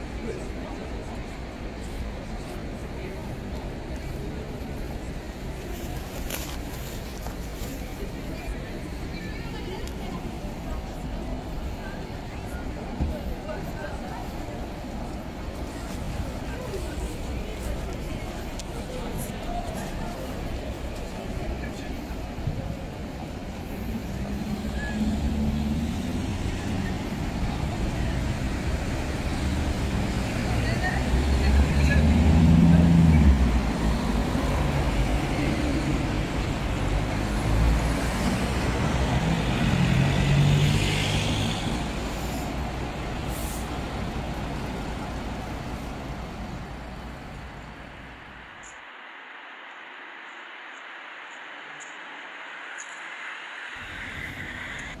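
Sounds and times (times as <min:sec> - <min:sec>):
buses and cars passing: 0:00.0 - 0:55.0
people's voices: 0:00.0 - 0:55.0.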